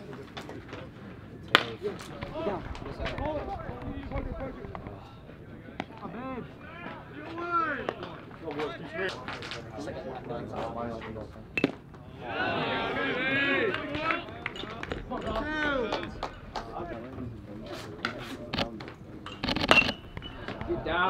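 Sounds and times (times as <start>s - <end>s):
people calling out: 12.0s - 16.9s.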